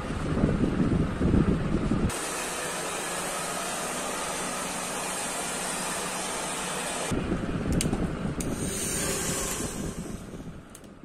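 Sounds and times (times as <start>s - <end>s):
hair dryer blowing: 2.1s - 7.2s, 8.4s - 10.5s.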